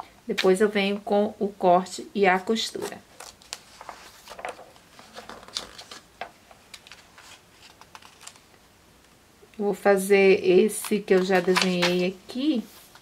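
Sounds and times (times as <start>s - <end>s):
paper rustling: 2.7s - 8.5s, 10.8s - 13.0s.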